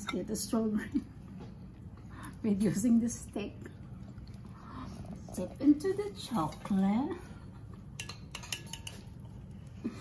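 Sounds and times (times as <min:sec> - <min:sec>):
metal forks clinking on pot: 0:08.0 - 0:09.5.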